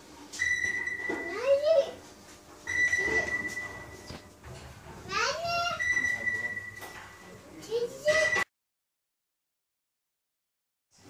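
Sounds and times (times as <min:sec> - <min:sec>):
long electronic beeps: 0:00.4 - 0:01.3, 0:02.7 - 0:04.3, 0:05.7 - 0:07.4
child's voice: 0:01.2 - 0:02.1, 0:05.0 - 0:05.9, 0:07.6 - 0:08.5.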